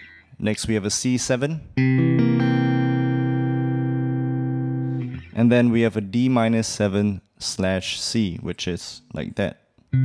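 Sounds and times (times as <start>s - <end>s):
electric guitar chord ringing: 1.8s - 5.4s.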